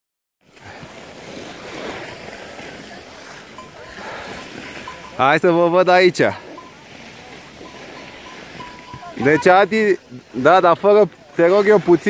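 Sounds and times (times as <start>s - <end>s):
skis sliding over snow: 0.4s - 12.0s.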